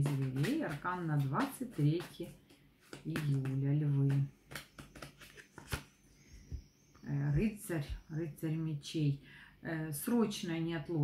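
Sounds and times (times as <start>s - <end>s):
cards clicking and rustling: 4.1s - 5.9s.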